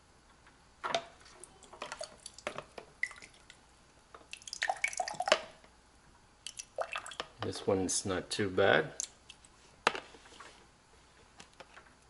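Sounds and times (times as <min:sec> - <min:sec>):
water dripping and splashing: 0:01.5 - 0:03.6, 0:04.3 - 0:05.5, 0:06.4 - 0:07.4.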